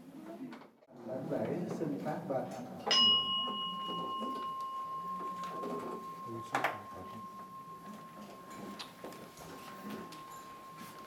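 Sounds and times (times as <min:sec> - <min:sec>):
bowl bell ringing: 0:02.8 - 0:11.0.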